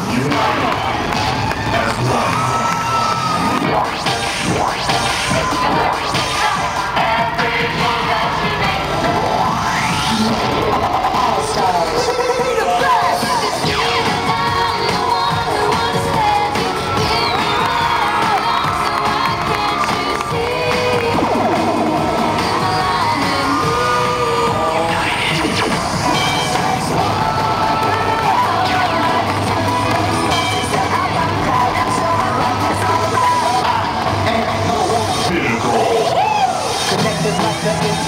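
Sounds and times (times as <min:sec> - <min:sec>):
cheerleading music over speakers: 0:00.0 - 0:38.0
crowd cheering and shouting: 0:00.0 - 0:38.0.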